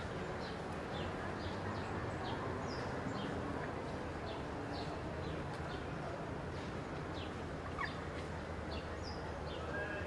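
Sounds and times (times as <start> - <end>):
low street rumble: 0.0 - 10.0
small birds chirping: 6.8 - 10.0.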